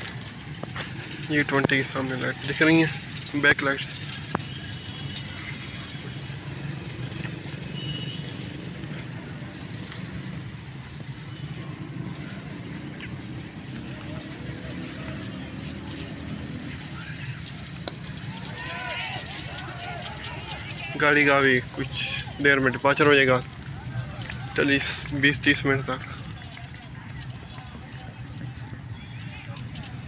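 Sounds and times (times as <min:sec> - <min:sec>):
faint voices: 0:08.4 - 0:30.0.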